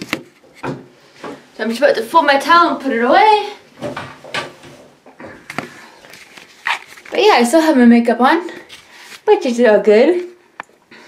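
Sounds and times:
towel rustling and knocks: 3.7 - 6.6.

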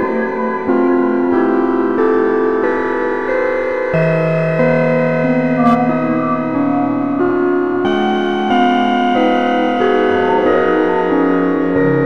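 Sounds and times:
dark ambient music: 0.0 - 12.0.

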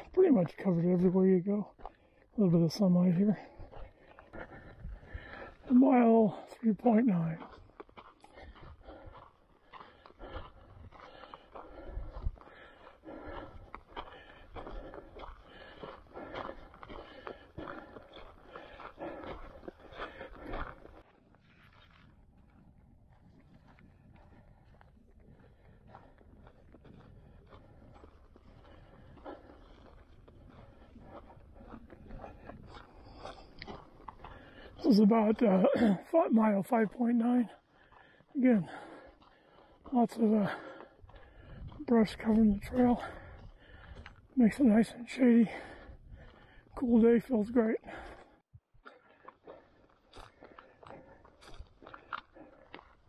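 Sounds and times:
footsteps on dirt trail: 0.0 - 53.0.

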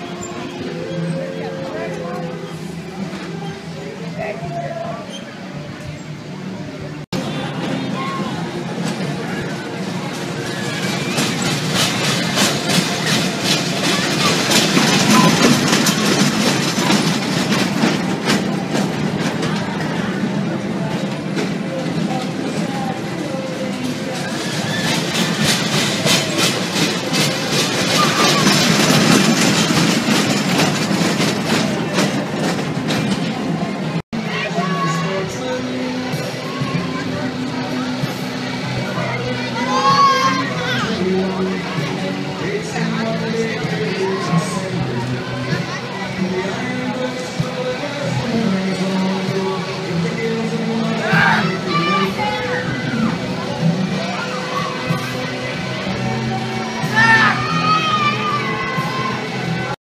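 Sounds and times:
crowd chatter: 0.0 - 59.8
fairground music: 0.0 - 59.8
roller coaster rattling on track: 0.0 - 59.8
young riders shrieking and shouting: 27.8 - 29.2, 39.0 - 41.0, 50.9 - 53.2, 56.8 - 59.6.

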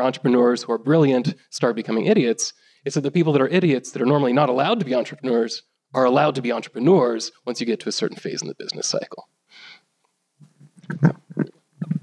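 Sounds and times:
man making throaty vocal noises: 10.4 - 12.0.

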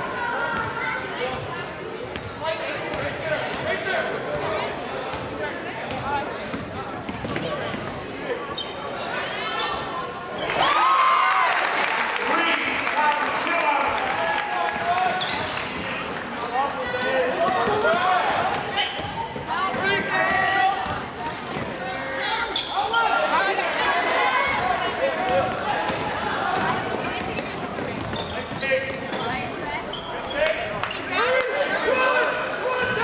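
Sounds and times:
voices talking and calling out: 12.2 - 33.0.

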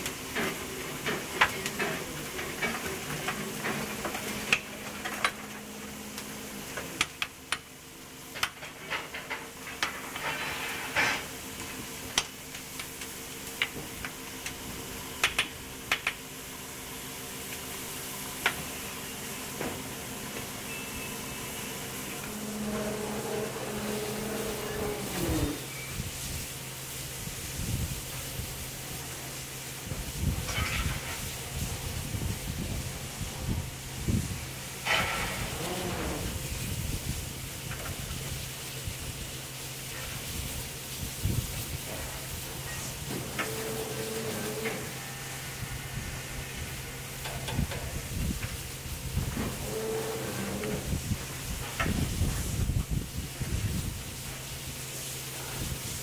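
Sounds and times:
steam locomotive hissing steam: 15.7 - 56.0.

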